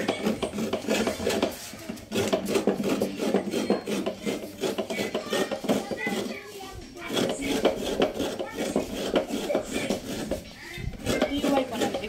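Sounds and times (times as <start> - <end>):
hands scraping in plastic basin: 0.0 - 12.0.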